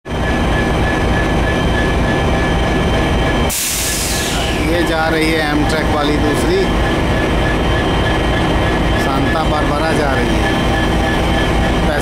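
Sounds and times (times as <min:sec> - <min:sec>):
diesel locomotive idling: 0:00.1 - 0:12.0
loud hiss: 0:03.5 - 0:04.7.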